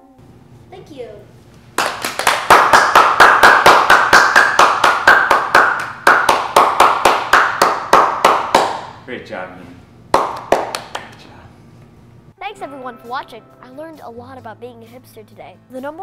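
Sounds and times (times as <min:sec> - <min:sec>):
people clapping: 0:01.8 - 0:09.0, 0:10.1 - 0:11.3.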